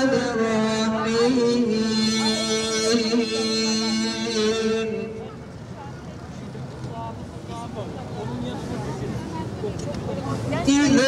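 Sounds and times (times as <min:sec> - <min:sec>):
street traffic rumble: 0:00.0 - 0:11.0
wind: 0:00.0 - 0:11.0.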